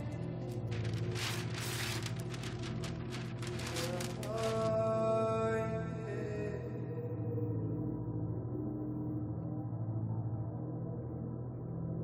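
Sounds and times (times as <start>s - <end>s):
low drone and string tones: 0.0s - 12.0s
wrapping paper being torn: 0.5s - 4.8s.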